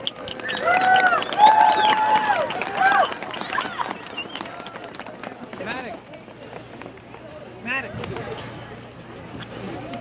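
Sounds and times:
crowd chattering: 0.0 - 10.0.

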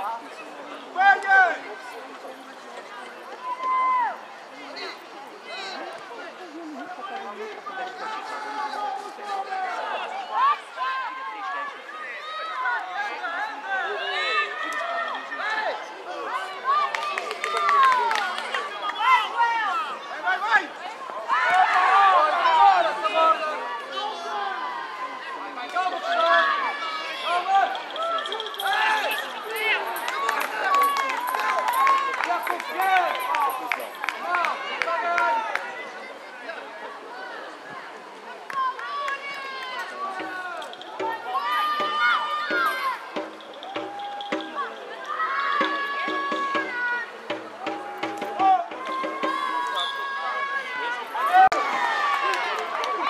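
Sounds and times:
crowd of voices shouting: 3.3 - 6.0, 6.7 - 53.0.

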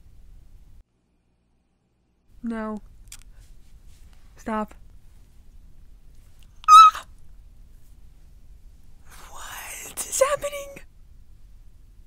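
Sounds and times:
woman squealing with excitement: 6.7 - 7.0.

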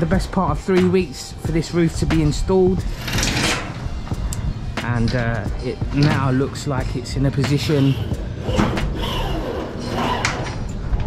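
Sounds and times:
steel roofing sheets scraping: 2.8 - 3.9, 7.4 - 10.7.

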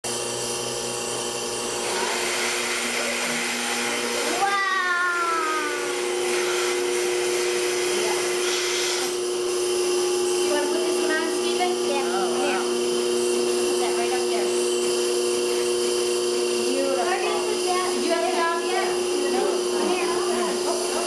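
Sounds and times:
milking machine vacuum hum: 0.1 - 21.0.

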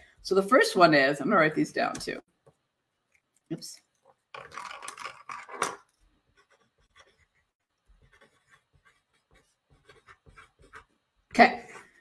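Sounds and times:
pen writing on paper: 6.3 - 11.0.

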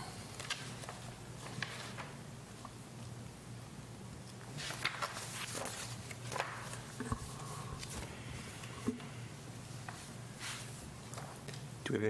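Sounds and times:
low hum of room noise: 0.0 - 12.0.

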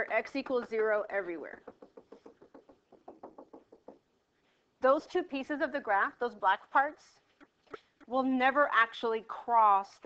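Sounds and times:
stylus tapping on drawing surface: 0.4 - 4.1.

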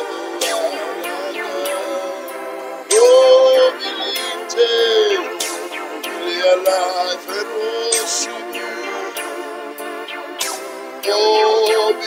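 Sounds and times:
man singing worship song: 0.0 - 5.4, 6.1 - 9.4, 11.0 - 12.0
musical accompaniment: 0.0 - 12.0.

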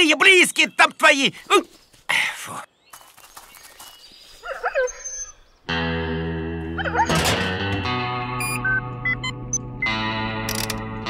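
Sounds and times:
high electronic beeps: 8.4 - 10.0.

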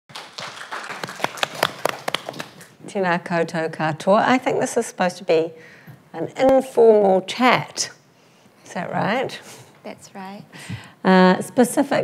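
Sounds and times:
audience applauding: 0.1 - 2.7.

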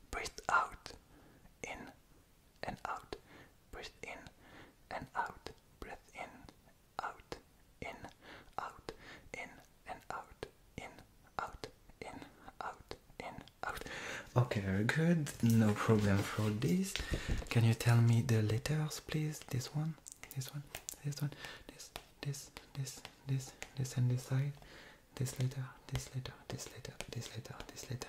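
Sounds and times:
man whispering: 0.0 - 2.0, 2.6 - 28.0.

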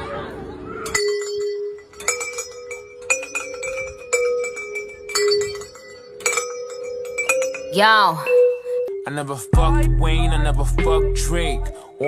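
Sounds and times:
metallic bell chime: 0.9 - 9.4.

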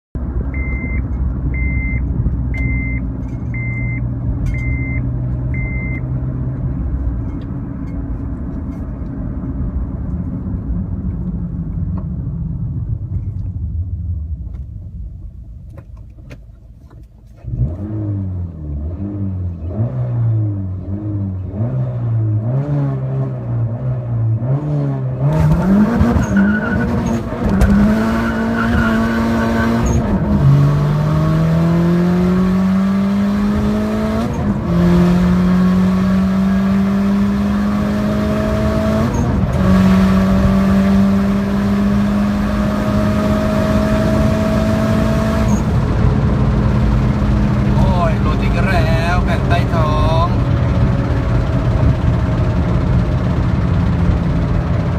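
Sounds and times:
car engine accelerating: 0.2 - 54.9.

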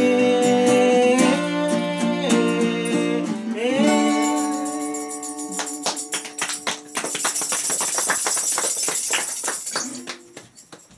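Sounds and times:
audience applauding: 5.6 - 10.9.

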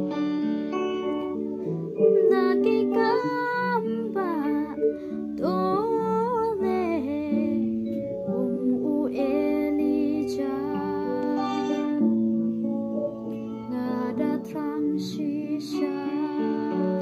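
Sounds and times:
plucked string accompaniment: 0.0 - 17.0
woman singing gospel song: 5.4 - 7.7, 8.3 - 12.1, 13.7 - 17.0.

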